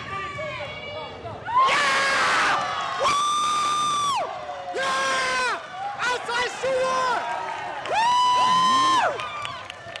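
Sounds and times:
spectators cheering: 0:01.5 - 0:10.0.

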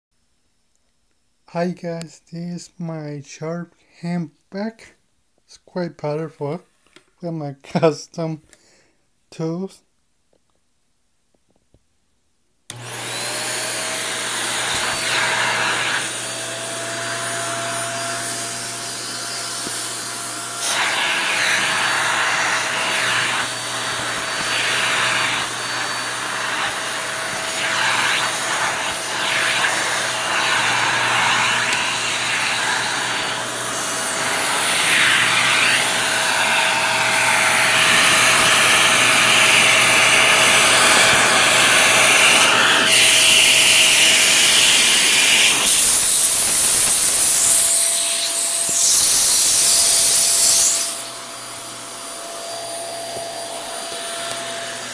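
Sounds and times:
rushing suction airflow: 0:12.7 - 0:51.0
handheld vacuum motor whine: 0:12.7 - 0:54.9.

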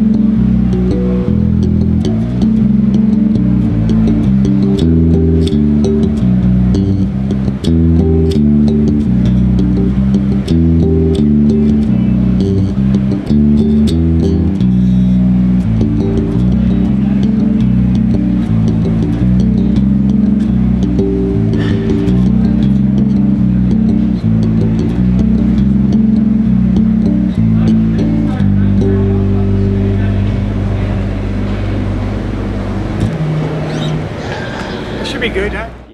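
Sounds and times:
electric bass guitar solo: 0:00.0 - 0:35.9.

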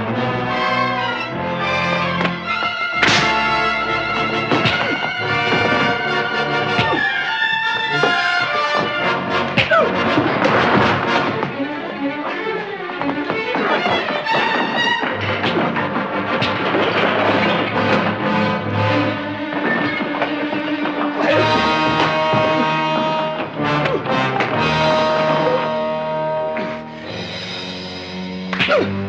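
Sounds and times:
orchestral music with brass and strings: 0:00.0 - 0:29.0
fistfight thuds: 0:04.2 - 0:07.1.

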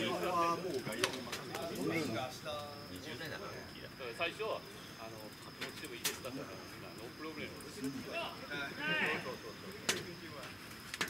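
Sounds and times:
distant people talking: 0:00.0 - 0:11.0.

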